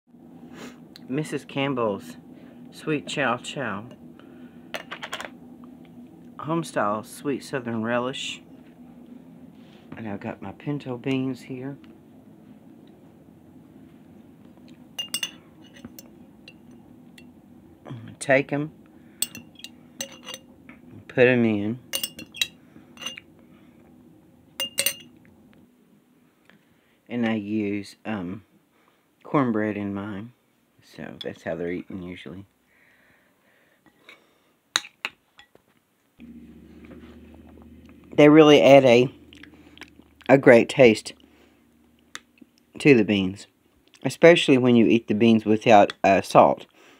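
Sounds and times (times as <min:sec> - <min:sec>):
steady low hum: 0:00.1 - 0:31.1, 0:36.2 - 0:45.6
metal spoon clinking: 0:15.0 - 0:17.3, 0:19.2 - 0:20.5, 0:21.9 - 0:23.3, 0:24.6 - 0:25.1.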